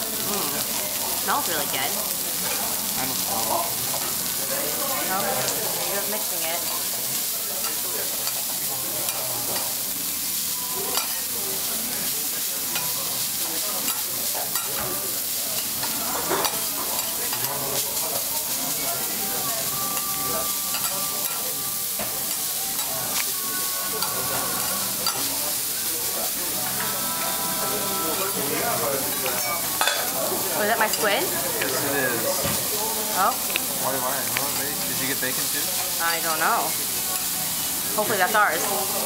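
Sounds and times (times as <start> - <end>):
cabbage sizzling on griddle: 0.0 - 39.0.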